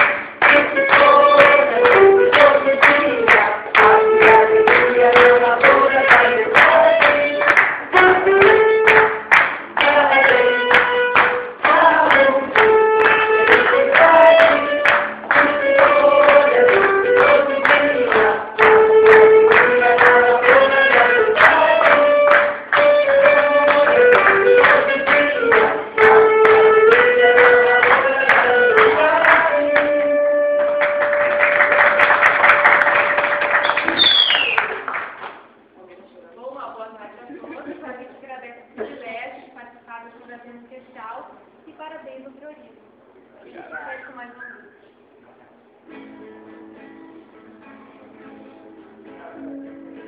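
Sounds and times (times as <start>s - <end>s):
live band music: 0.0s - 34.7s
audience applause: 30.6s - 35.4s.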